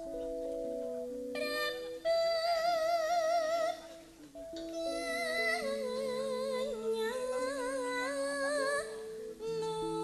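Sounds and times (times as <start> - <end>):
woman singing with vibrato: 1.4 - 3.9, 4.7 - 10.0.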